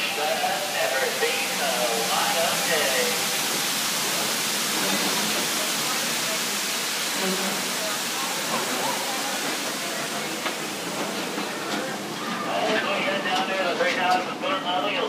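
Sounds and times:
loud steady rushing hiss: 0.0s - 13.8s
faint voices: 0.0s - 15.0s.

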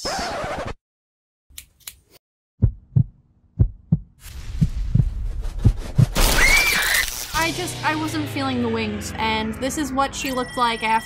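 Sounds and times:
heartbeat thumps: 2.6s - 6.2s
low rumble: 3.0s - 6.2s.

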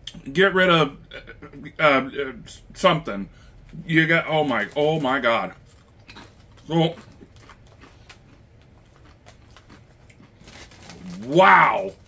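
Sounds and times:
person chewing chips: 3.5s - 12.0s
chip bag rustling: 3.7s - 12.0s.

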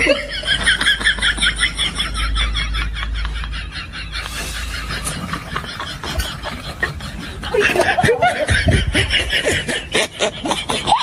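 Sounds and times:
people laughing: 0.0s - 11.0s.

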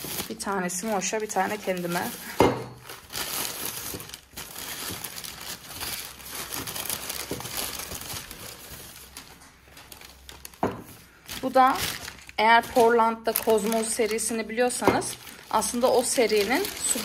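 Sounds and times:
packaging wrap crinkling: 0.0s - 17.0s.

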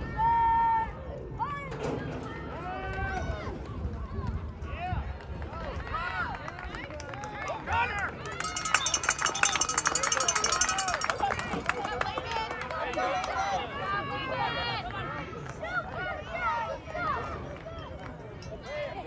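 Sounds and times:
crowd shouting and cheering: 7.4s - 19.0s.

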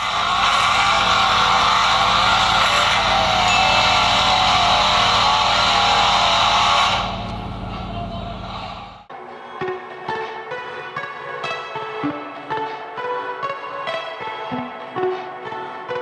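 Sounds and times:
car engine running hard: 0.0s - 9.1s
car tyres screeching: 0.0s - 9.1s.

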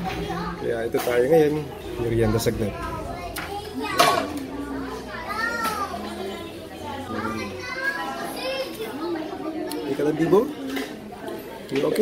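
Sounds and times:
background talk: 0.0s - 12.0s
children calling and chattering: 0.0s - 12.0s.

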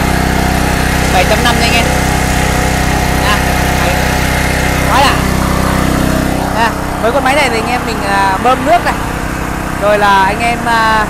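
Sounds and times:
petrol engine idling: 0.0s - 11.0s.

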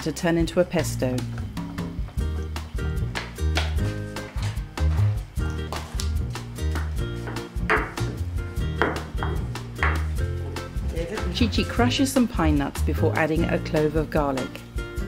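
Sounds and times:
background music with bass line: 0.4s - 15.0s
pestle knocking in mortar: 6.7s - 8.1s, 8.7s - 10.2s.

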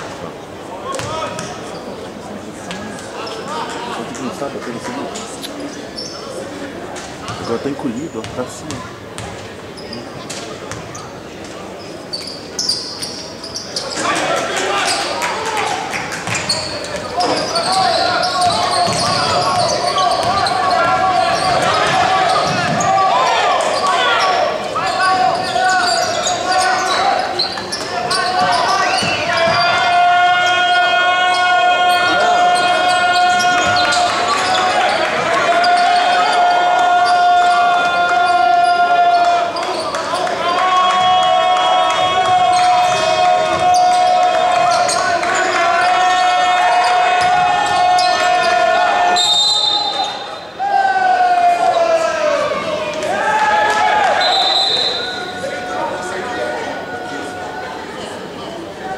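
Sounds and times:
voices: 0.0s - 58.9s
basketball bouncing on hardwood: 18.4s - 19.3s.

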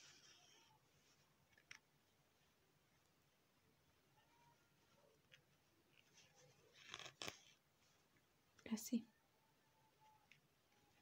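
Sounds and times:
soft voice sound: 3.9s - 7.2s
yarn pulled through stitches: 4.2s - 7.6s.

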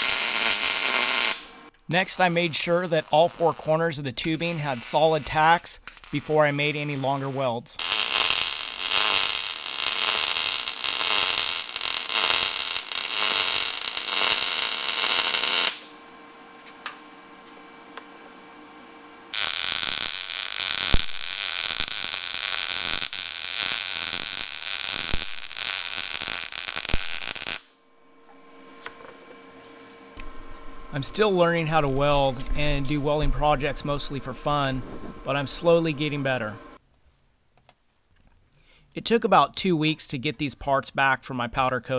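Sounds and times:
welding arc crackling: 0.0s - 16.0s, 19.3s - 27.8s
faint hum: 27.8s - 36.8s.

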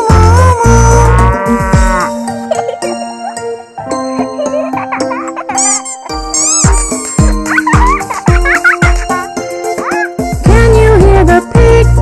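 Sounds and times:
bright children's instrumental music: 0.0s - 12.0s
high chirping glides: 5.2s - 10.1s.

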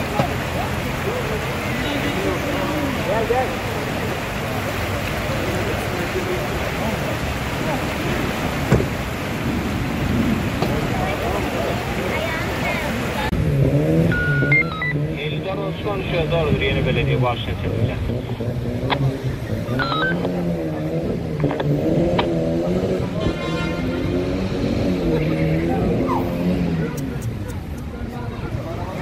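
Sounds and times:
faint voices: 0.0s - 9.3s, 10.2s - 13.3s, 15.0s - 29.0s
heavy rain and floodwater rushing: 0.0s - 29.0s
idling traffic: 0.0s - 29.0s.

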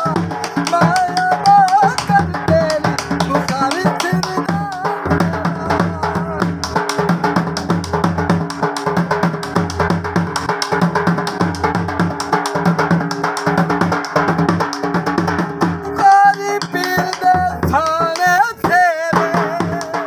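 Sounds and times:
person singing: 0.0s - 7.0s, 15.8s - 20.0s
dhol drum fast rhythm: 0.0s - 20.0s.

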